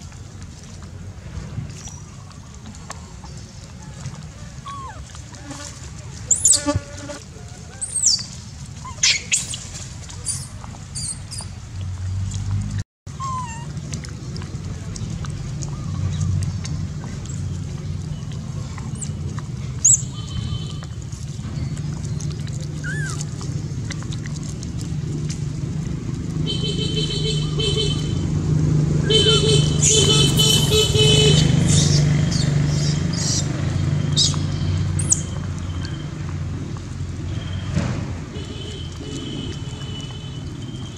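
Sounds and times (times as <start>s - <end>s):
monkeys rustling in dry leaves: 3.9s - 11.4s
baby monkey screaming: 4.6s - 5.0s, 8.8s - 9.6s, 13.1s - 13.8s, 22.8s - 23.2s
monkey squeak: 4.6s - 5.0s, 6.3s - 6.7s, 7.8s - 11.5s, 13.1s - 13.7s, 19.8s - 20.1s, 22.8s - 23.3s, 31.7s - 33.5s, 35.0s - 35.4s.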